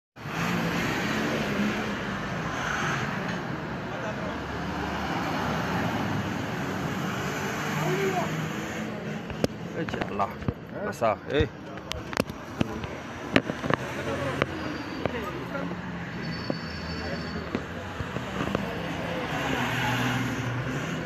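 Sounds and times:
people's voices: 0:03.2 - 0:21.0.

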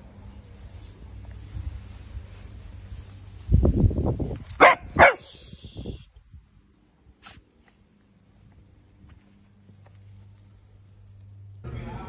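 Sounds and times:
dog barking sharply: 0:04.6 - 0:05.3.

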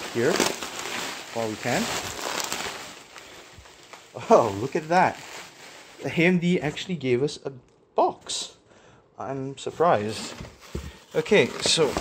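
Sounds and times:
bubble wrap crinkling: 0:00.0 - 0:06.8, 0:10.2 - 0:12.0.

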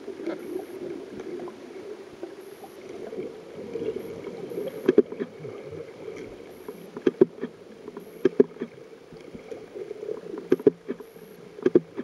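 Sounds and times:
muffled underwater rush of water: 0:00.0 - 0:12.0.

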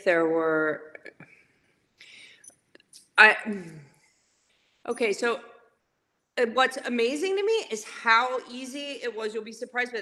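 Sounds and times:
woman breathing in: 0:02.0 - 0:02.6.

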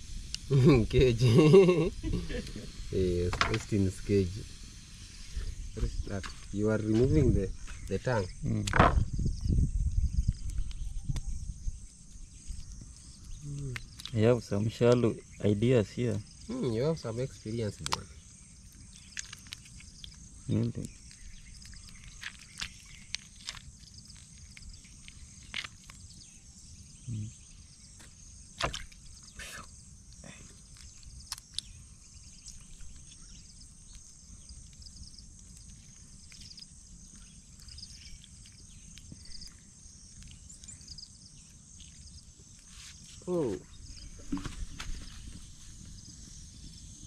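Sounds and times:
high insect chirring: 0:00.0 - 0:47.0
low voice hum: 0:13.3 - 0:13.9, 0:27.0 - 0:27.4
water splashing in basin: 0:28.6 - 0:29.1.

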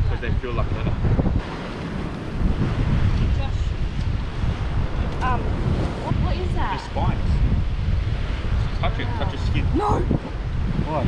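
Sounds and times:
surf washing against rocks: 0:00.0 - 0:11.0
wind on microphone: 0:00.0 - 0:11.0.

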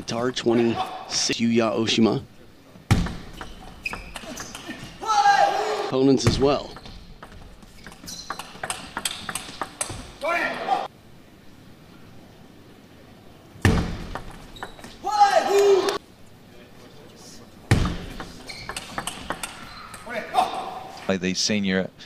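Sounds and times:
short shout: 0:05.0 - 0:05.9, 0:15.0 - 0:16.0
table tennis ball clicking: 0:06.8 - 0:10.1, 0:18.2 - 0:20.0.

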